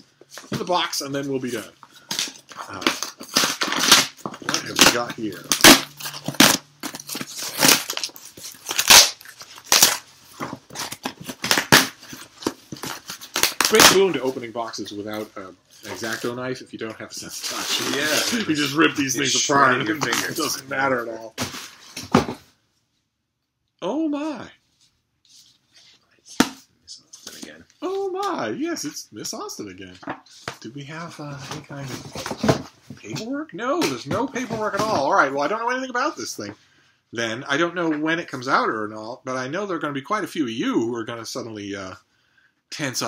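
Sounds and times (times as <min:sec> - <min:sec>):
cardboard box tearing: 0:02.2 - 0:14.1, 0:17.4 - 0:18.8.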